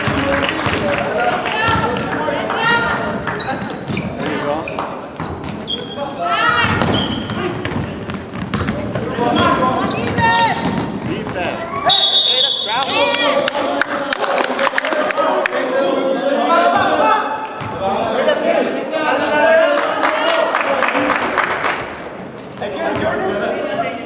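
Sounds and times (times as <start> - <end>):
players' voices: 0.0 - 24.0
basketball bouncing on court: 1.6 - 2.2, 2.8 - 5.6, 6.5 - 11.5
sneakers squeaking on floor: 1.7 - 12.9.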